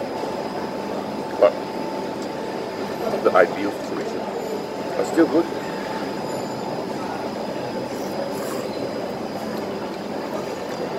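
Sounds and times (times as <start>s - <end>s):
dining area background noise: 0.0s - 10.9s.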